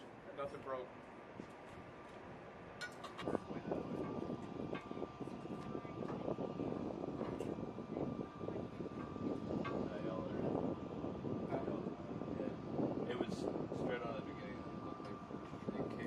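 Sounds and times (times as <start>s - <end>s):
continuous engine rumble: 0.0s - 16.0s
steady high whine: 0.0s - 16.0s.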